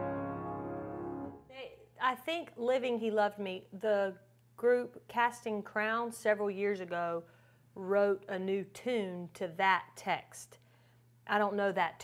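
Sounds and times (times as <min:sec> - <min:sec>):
grand piano chord ringing: 0:00.0 - 0:01.4.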